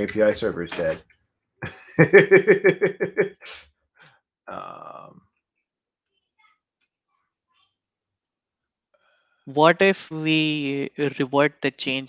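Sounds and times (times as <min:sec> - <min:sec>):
man laughing: 0:01.6 - 0:03.6.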